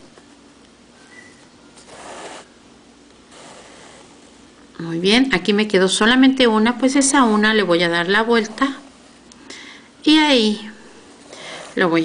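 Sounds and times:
thread swishing through fabric: 1.8s - 2.5s, 3.3s - 4.3s, 11.1s - 12.0s.

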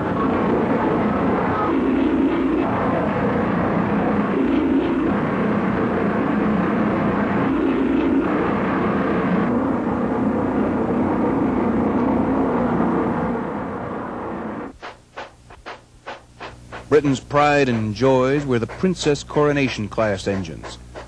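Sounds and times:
steam train rumbling: 0.0s - 21.0s.

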